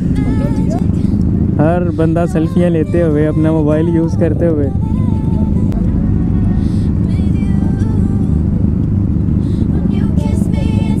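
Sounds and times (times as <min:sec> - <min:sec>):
motorcycle engines idling: 0:00.0 - 0:11.0.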